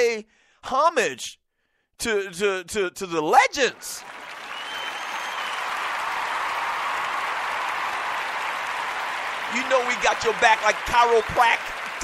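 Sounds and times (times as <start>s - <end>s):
crowd clapping and cheering: 3.6s - 12.0s.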